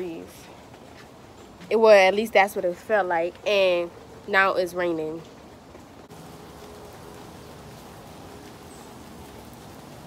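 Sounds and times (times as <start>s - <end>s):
steady rain: 0.0s - 10.0s.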